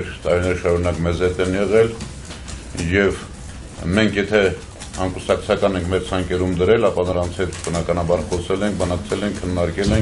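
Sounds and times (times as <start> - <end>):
man speaking into a microphone: 0.0 - 2.1, 2.7 - 10.0.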